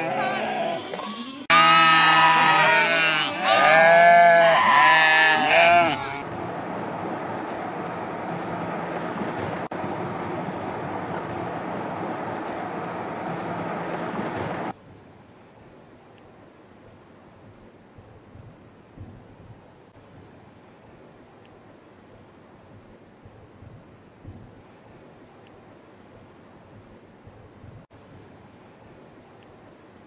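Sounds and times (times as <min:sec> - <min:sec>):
sheep and goats bleating: 0:00.0 - 0:06.2.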